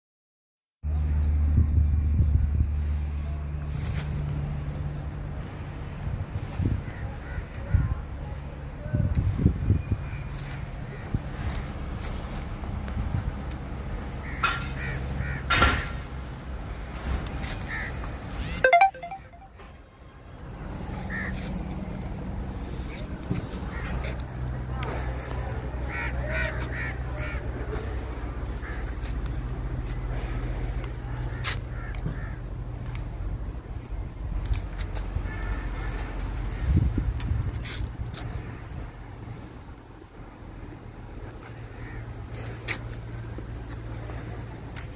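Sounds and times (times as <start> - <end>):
crows cawing: 14.2 - 15.9, 17.7 - 17.9, 21.1 - 21.4, 25.9 - 27.9, 28.5 - 29.1, 31.3 - 32.5, 35.2 - 36.0, 41.4 - 42.6
low outdoor rumble: 20.5 - 44.9
wind on microphone: 36.5 - 38.1.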